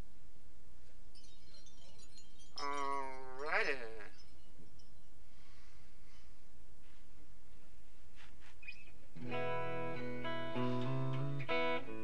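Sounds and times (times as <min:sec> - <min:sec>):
faint high tinkling: 0:00.8 - 0:06.4
voice holding a note: 0:02.6 - 0:04.1.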